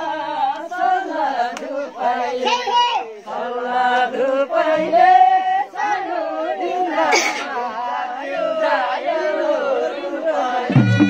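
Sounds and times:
group singing folk melody: 0:00.0 - 0:11.0.

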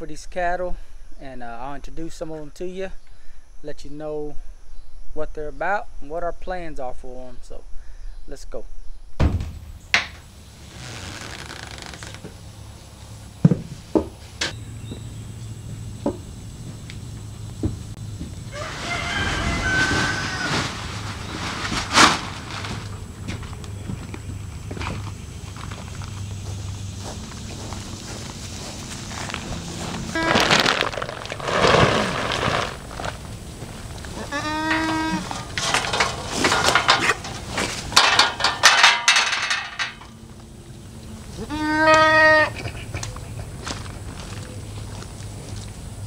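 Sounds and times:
loud rustling and scraping: 0:10.6 - 0:12.3, 0:18.5 - 0:24.2, 0:24.8 - 0:40.1
goat bleating: 0:34.0 - 0:35.4, 0:41.4 - 0:42.8.

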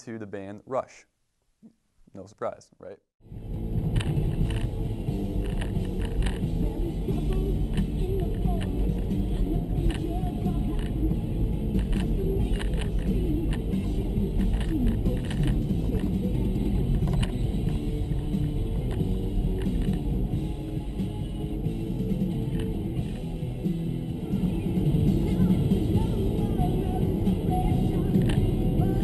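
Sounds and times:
van driving rumble: 0:03.2 - 0:29.0
music on car stereo: 0:03.3 - 0:29.0.

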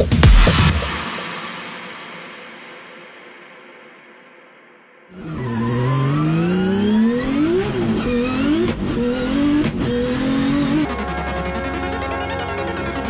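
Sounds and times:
car engine revving hard: 0:05.2 - 0:10.9.

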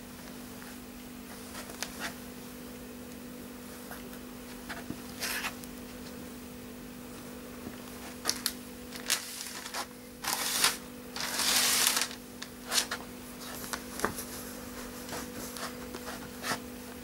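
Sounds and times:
steady hum: 0:00.0 - 0:17.0.

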